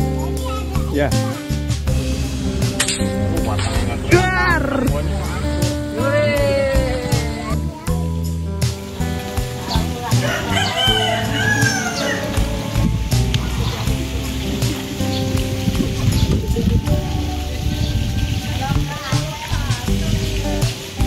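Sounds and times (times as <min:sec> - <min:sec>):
background music: 0:00.0 - 0:21.0
rooster crowing: 0:10.1 - 0:12.7.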